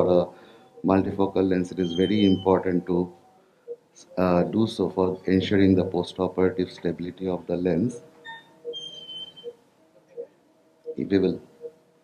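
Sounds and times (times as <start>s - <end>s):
soft low beeps: 0.0s - 6.0s, 8.0s - 11.9s
high steady tone: 0.8s - 3.0s.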